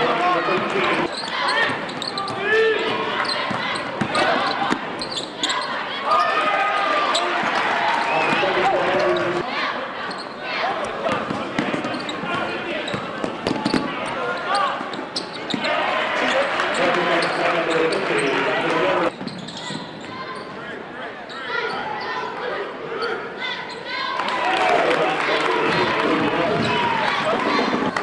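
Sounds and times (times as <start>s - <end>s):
crowd voices and shouts: 0.0s - 28.0s
basketball bouncing on court: 1.6s - 4.9s, 11.1s - 14.0s.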